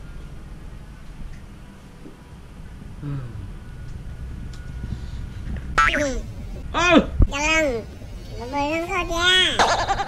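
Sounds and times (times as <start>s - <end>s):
low background rumble: 0.0s - 10.0s
high-pitched voice exclaiming: 5.8s - 7.0s.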